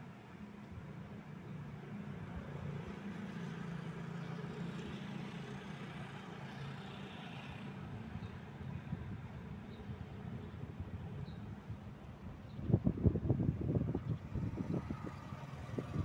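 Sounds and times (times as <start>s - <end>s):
motor vehicle rumble: 8.8s - 16.0s.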